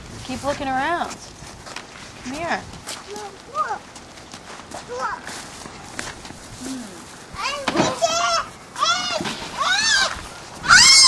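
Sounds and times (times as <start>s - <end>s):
young child squealing: 8.2s - 11.0s.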